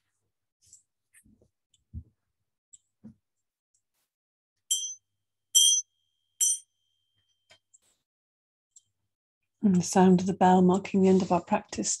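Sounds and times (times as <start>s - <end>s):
small bell ringing: 4.7s - 7.0s.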